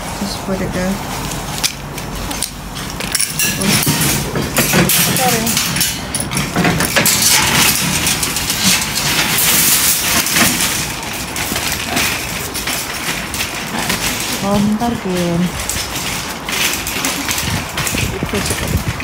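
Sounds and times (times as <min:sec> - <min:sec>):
trolley wheels rattling on paving: 0:00.0 - 0:19.0
trolley lock and chain clanking: 0:01.0 - 0:19.0.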